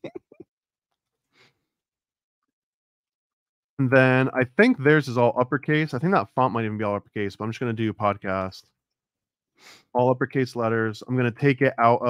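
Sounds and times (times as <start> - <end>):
person chuckling: 0.0 - 0.4.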